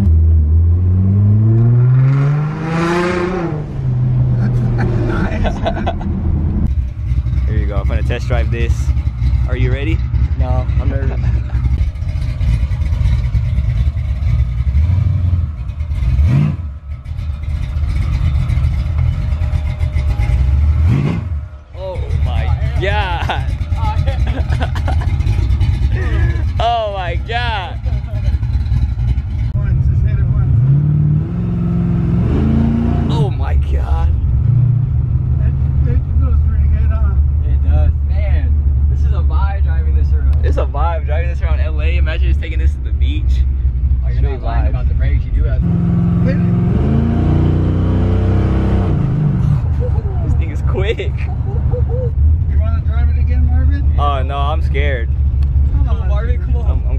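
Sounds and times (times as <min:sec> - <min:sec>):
car engine revving: 0:00.0 - 0:56.9
voices and laughter: 0:04.3 - 0:06.3, 0:10.6 - 0:11.8, 0:22.1 - 0:28.6, 0:49.4 - 0:52.9.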